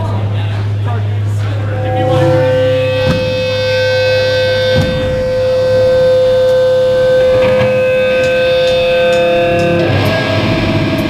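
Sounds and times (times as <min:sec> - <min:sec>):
low amp hum: 0:00.0 - 0:11.0
electric guitar feedback tone: 0:01.2 - 0:11.0.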